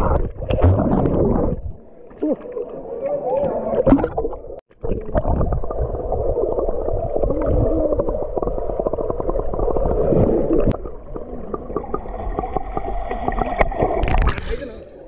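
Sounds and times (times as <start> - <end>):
muffled underwater gurgling: 0.0 - 15.0.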